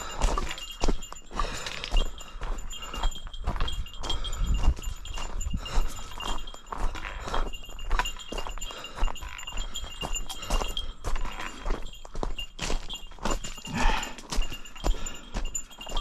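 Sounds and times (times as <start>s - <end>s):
footsteps on gravel: 0.0s - 16.0s
small bell jingling: 0.0s - 16.0s.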